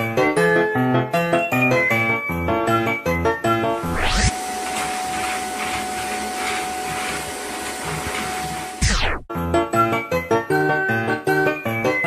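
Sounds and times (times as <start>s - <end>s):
vacuum cleaner whining: 3.8s - 9.3s.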